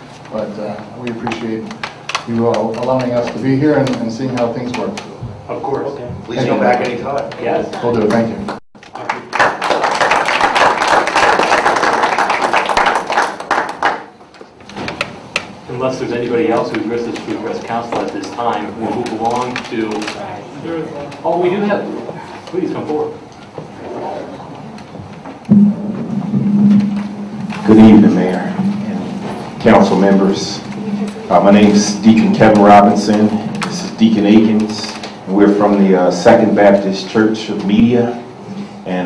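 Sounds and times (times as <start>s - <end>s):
people applauding: 7.8s - 14.3s
sound system low hum: 23.6s - 34.2s
microphone thump: 25.0s - 29.6s.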